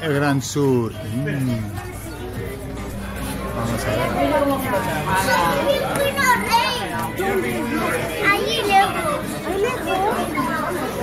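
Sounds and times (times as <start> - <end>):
visitors chattering: 0.0 - 11.0
children's high-pitched voices: 5.0 - 11.0.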